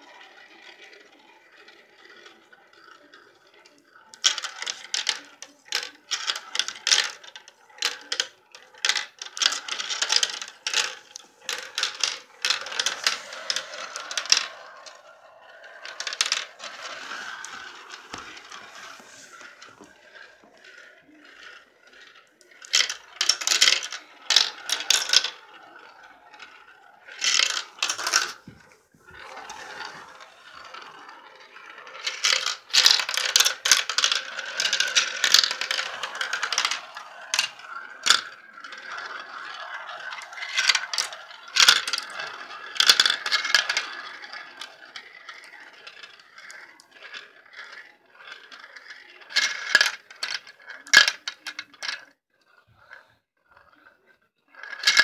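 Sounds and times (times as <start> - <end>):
marbles rolling in plastic funnel: 0.0 - 55.0
marbles clicking together: 0.1 - 52.1.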